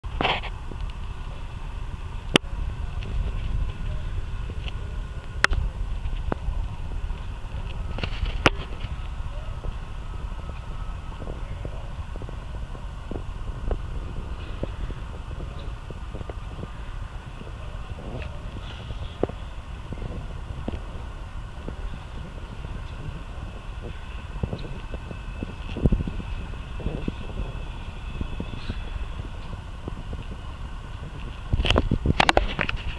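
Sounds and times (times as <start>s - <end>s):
steady low rumble: 0.0s - 32.9s
faint background voices: 0.2s - 32.9s.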